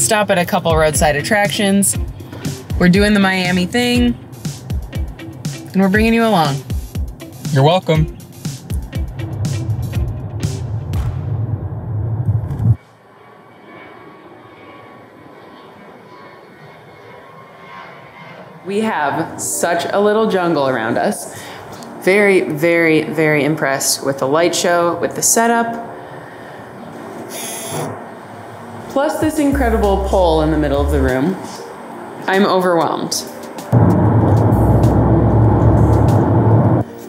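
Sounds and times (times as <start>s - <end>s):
airplane flying overhead: 0.0s - 7.5s, 8.1s - 32.6s, 33.3s - 37.0s
music with heavy bass beat: 0.7s - 11.7s, 33.8s - 36.8s.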